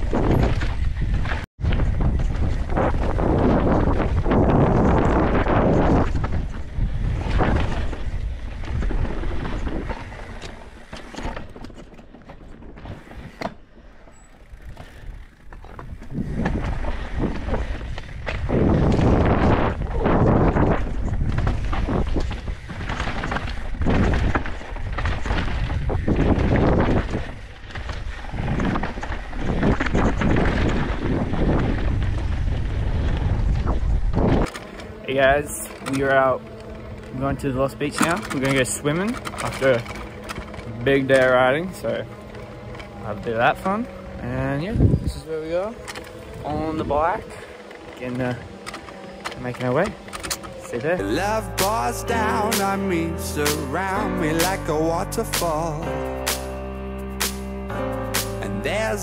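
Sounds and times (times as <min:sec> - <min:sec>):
wind buffeting microphone: 0:00.0 - 0:51.1
bike tyres rumbling on trail: 0:00.0 - 0:55.8.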